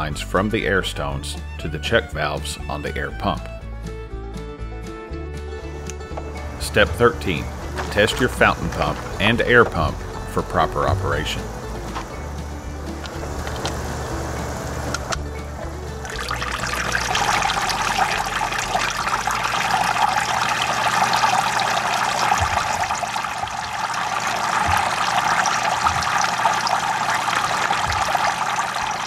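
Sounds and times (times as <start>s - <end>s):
water churning in tank: 5.9s - 29.0s
water spraying and splashing: 5.9s - 29.0s.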